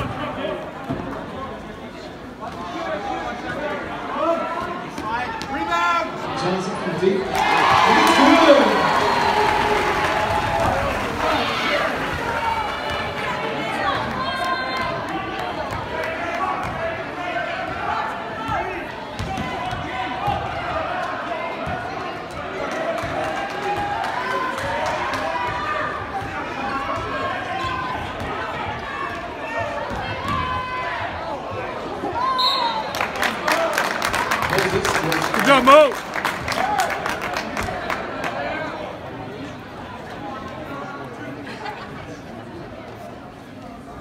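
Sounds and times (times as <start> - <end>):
crowd chatter: 0.0 - 44.0
crowd cheering: 6.6 - 38.8.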